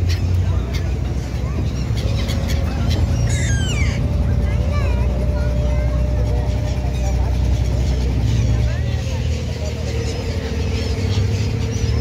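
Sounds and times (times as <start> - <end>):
boat engine rumbling: 0.0 - 12.0
gull calls: 1.7 - 4.6.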